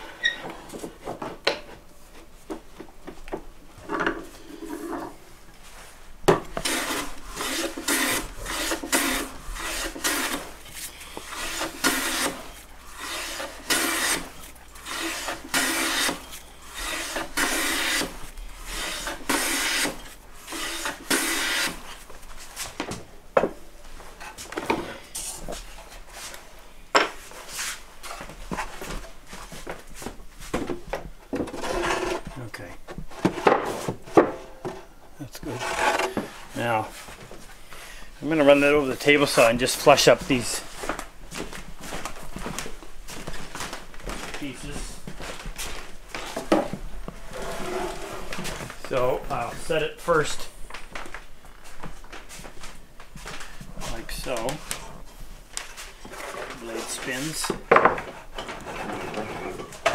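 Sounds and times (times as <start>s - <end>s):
hand plane shaving wood: 6.6s - 21.8s, 31.6s - 32.3s, 35.5s - 36.2s.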